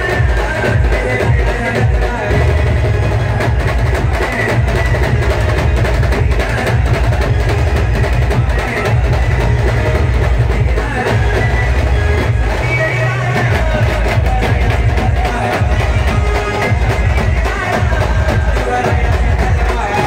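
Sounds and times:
loud party band music: 0.0 - 20.0.

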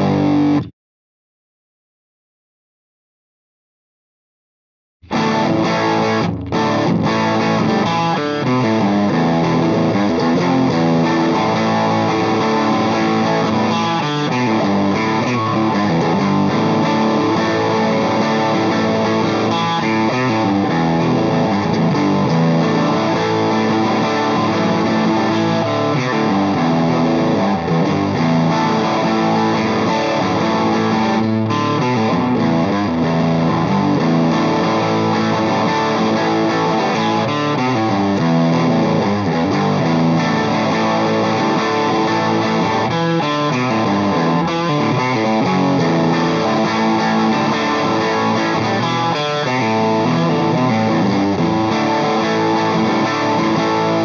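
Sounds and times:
distorted electric guitar chords: 0.0 - 0.7, 5.0 - 54.0.

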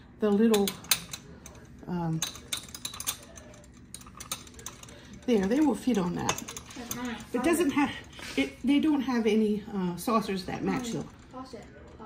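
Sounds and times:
ceramic cups clicking on metal: 0.2 - 8.1.

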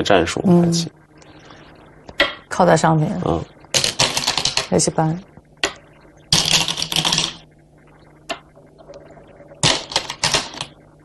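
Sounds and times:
game stones clicking on board: 3.8 - 4.7.

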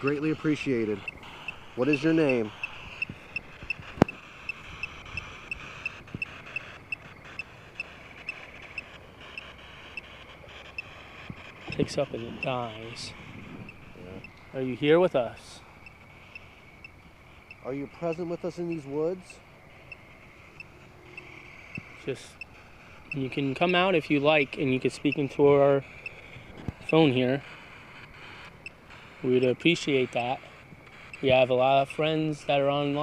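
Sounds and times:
night insects chirping: 0.0 - 33.0
steady insect hum: 0.0 - 33.0.

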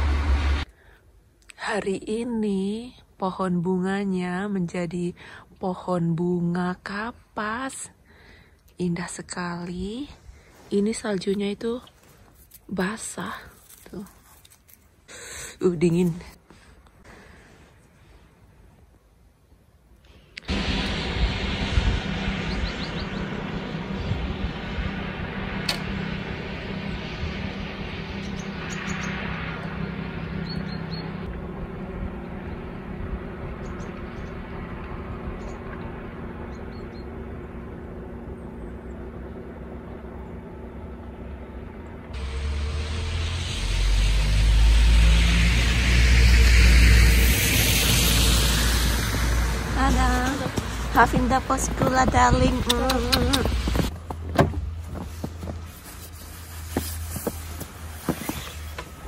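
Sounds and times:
car engine deep rumble: 0.0 - 0.7, 20.4 - 59.0
tractor engine humming: 0.0 - 0.7, 20.4 - 59.0.

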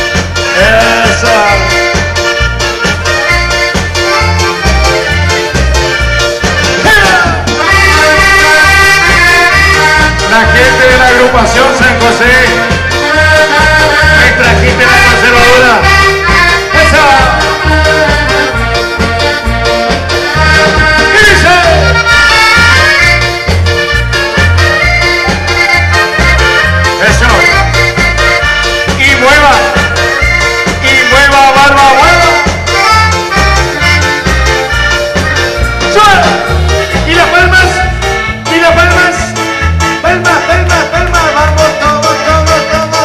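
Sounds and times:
dance band music with accordion: 0.0 - 43.0
pulsing bass line: 0.0 - 43.0.

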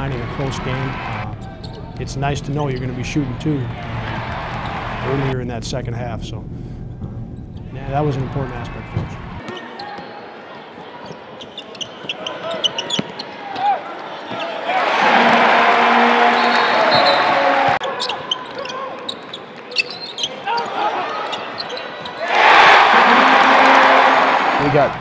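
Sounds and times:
crowd cheering: 0.0 - 1.7, 2.7 - 5.3, 7.8 - 25.0
sneakers squeaking: 1.0 - 3.1, 8.7 - 10.3, 11.0 - 24.5.

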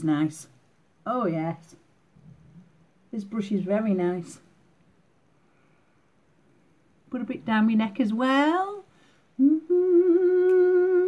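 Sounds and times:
woman humming: 9.4 - 11.0.

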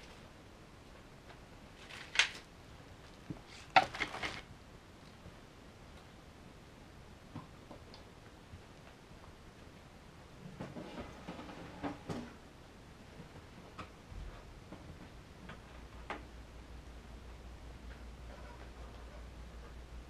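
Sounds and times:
low steady hum: 0.0 - 20.0
objects knocking and clattering: 3.3 - 4.5.

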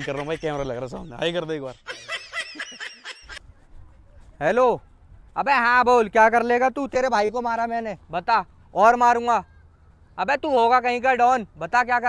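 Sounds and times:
man laughing: 0.0 - 3.4
faint outdoor background noise: 0.0 - 12.0.

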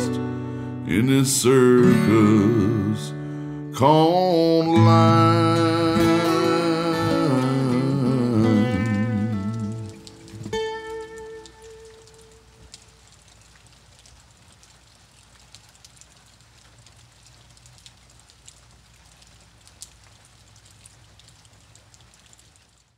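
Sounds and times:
faint steady hiss: 0.0 - 22.9.

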